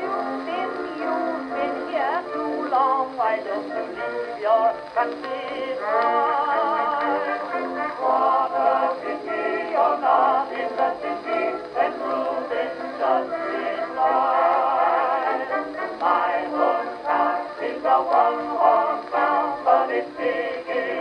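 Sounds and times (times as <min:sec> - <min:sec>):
men singing on gramophone record: 0:00.0 - 0:21.0.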